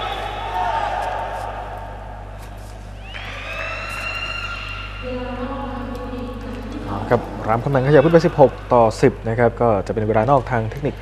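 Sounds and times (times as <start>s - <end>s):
sports hall ambience: 0.0s - 11.0s.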